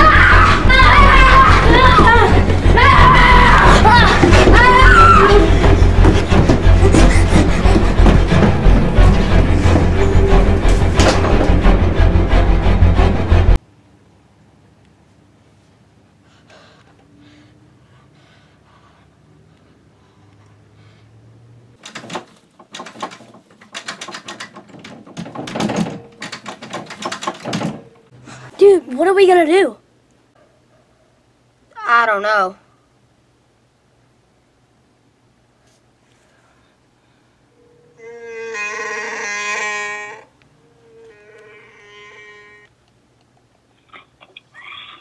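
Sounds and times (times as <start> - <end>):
knocking and rattling on wooden door: 21.8 - 27.9.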